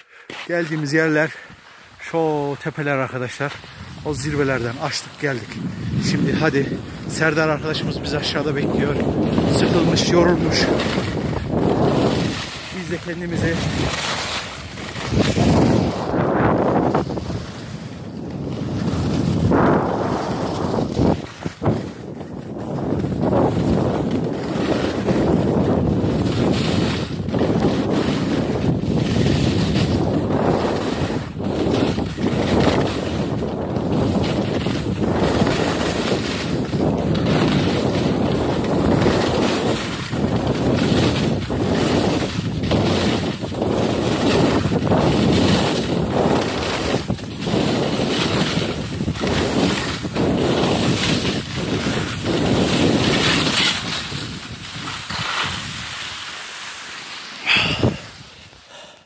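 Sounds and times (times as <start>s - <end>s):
wind buffeting microphone: 3.6s - 56.2s, 57.5s - 58.8s.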